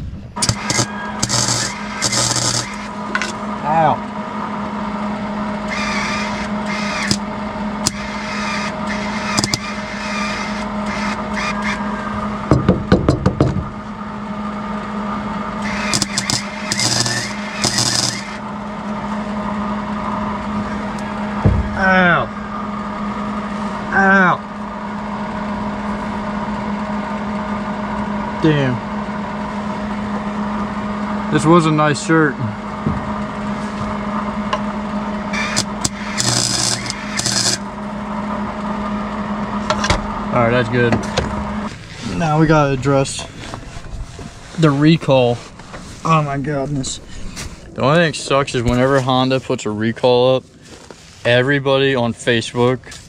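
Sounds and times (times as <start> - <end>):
steady hum: 0.0 - 53.0
welder arc crackling: 0.4 - 3.4, 5.7 - 11.8, 15.6 - 18.5, 35.3 - 37.8.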